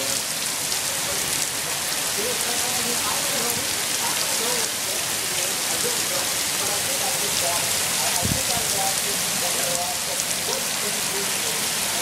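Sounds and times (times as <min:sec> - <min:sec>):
heavy rain on pavement: 0:00.0 - 0:12.0.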